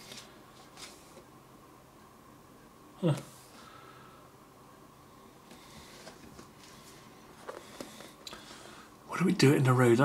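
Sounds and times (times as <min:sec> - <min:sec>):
low steady hum: 0:00.0 - 0:10.0
soft taps and rustles of book: 0:05.5 - 0:08.2.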